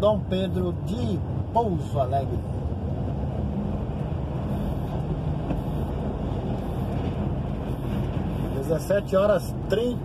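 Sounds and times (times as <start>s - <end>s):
road noise on wet highway: 0.0s - 10.0s
truck engine droning: 0.0s - 10.0s.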